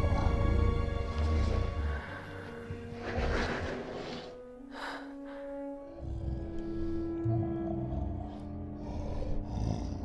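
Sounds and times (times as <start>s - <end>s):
film score sustained notes: 0.0s - 10.0s.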